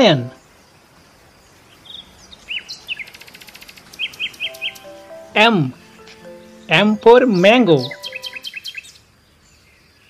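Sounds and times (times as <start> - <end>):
small birds chirping: 1.4 - 10.0
soft sustained music notes: 4.4 - 8.5.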